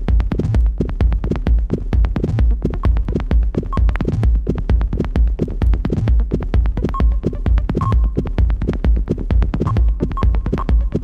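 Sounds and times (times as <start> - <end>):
deep kick drum: 0.0 - 11.0
fast clicking percussion: 0.0 - 11.0.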